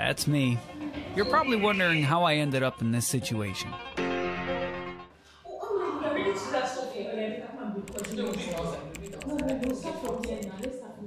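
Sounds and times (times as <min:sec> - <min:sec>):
person speaking: 0:07.8 - 0:10.8
light typing clicks: 0:07.9 - 0:10.7.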